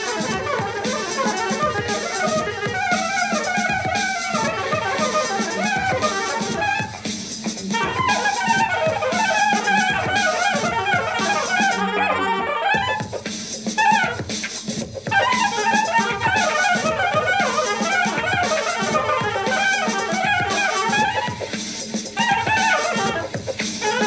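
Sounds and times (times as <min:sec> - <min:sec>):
soprano saxophone melody: 0:00.0 - 0:13.2, 0:13.8 - 0:14.2, 0:15.1 - 0:21.5, 0:22.2 - 0:24.0
backing track drum beat: 0:00.0 - 0:24.0.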